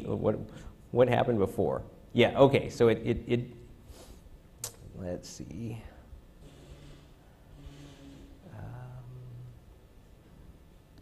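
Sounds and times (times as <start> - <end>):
man humming closed-mouth: 8.4 - 9.8.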